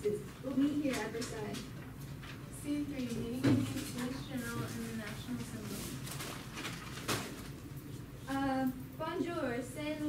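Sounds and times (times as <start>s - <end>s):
low room hum: 0.0s - 10.0s
paper rustling: 0.5s - 7.8s.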